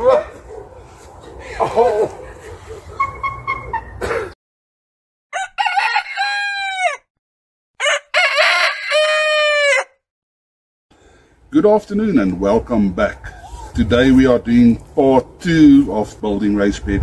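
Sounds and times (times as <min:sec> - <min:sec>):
outdoor background noise: 0:00.0 - 0:04.4, 0:10.9 - 0:17.0
rooster crowing: 0:05.3 - 0:07.1, 0:07.8 - 0:10.0.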